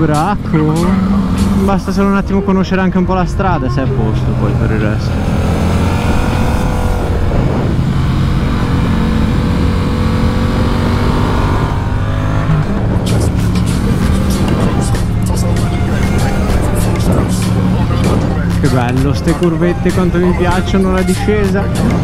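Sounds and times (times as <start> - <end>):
motorcycle engine running: 0.0 - 22.0.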